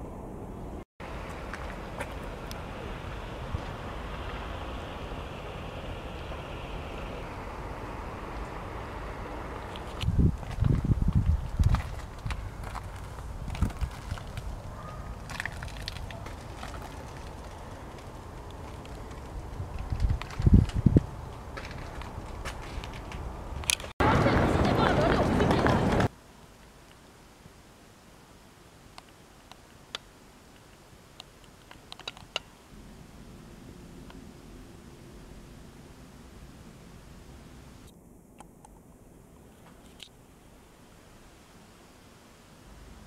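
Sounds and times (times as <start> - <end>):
distant city traffic rumble: 0.0 - 26.4, 30.9 - 43.0
wind on microphone: 2.4 - 14.8, 18.9 - 26.1
crowd of people talking: 24.0 - 26.1.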